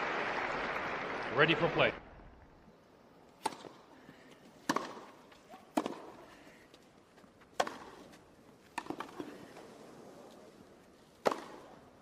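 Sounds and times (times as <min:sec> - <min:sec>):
tennis balls struck by rackets: 0:03.4 - 0:06.3, 0:07.4 - 0:09.5, 0:11.1 - 0:12.0.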